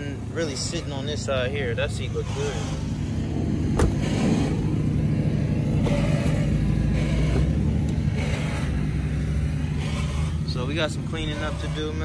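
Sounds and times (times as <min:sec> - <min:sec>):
vehicle engine idling: 0:00.0 - 0:12.0.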